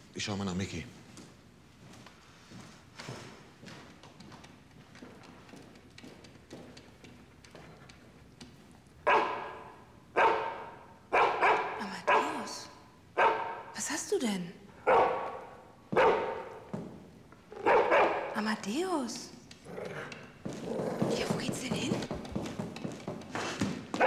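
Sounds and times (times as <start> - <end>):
dog barking: 9.0 - 13.8, 14.8 - 16.7, 17.6 - 18.4.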